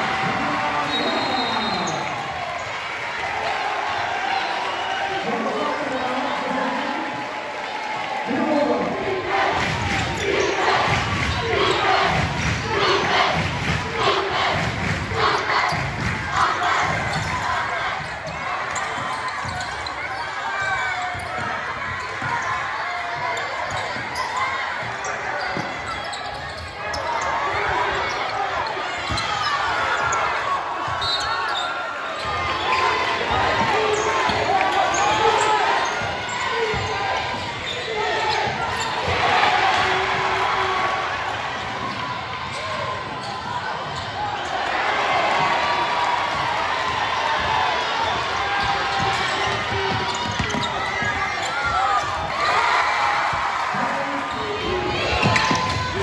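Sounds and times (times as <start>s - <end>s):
crowd talking and shouting: 0.0s - 56.0s.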